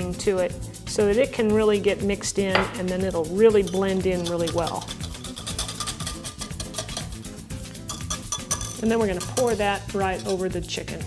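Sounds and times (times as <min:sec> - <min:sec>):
whisk clinking against glass: 0:03.3 - 0:10.6.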